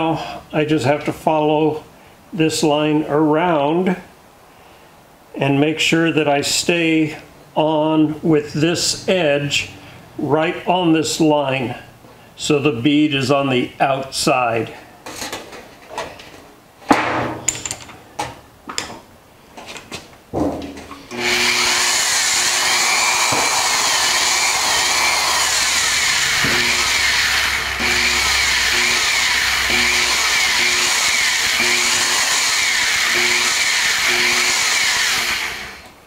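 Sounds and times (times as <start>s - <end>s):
sheet metal clanks and knocks: 20.4s - 20.9s
electric drill motor running: 21.1s - 35.9s.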